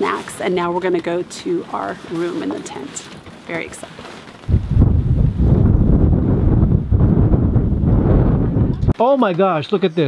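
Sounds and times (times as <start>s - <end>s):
wind buffeting microphone: 4.4s - 9.0s.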